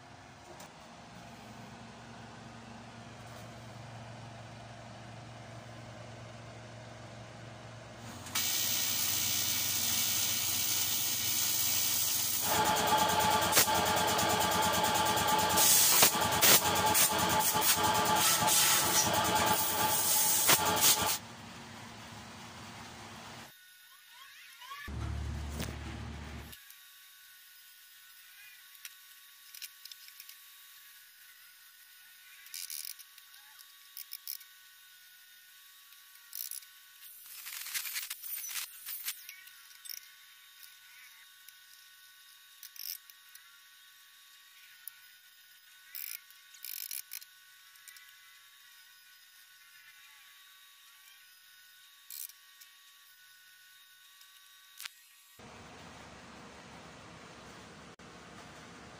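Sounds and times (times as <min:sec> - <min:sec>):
welding hiss and buzz: 0:08.3 - 0:21.2, 0:26.4 - 0:55.4.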